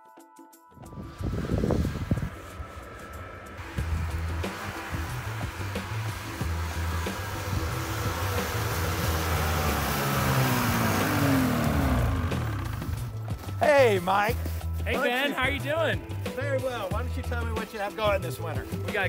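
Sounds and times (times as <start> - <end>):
background music: 0.0 - 19.0
snowmobile engine and track: 0.8 - 19.0.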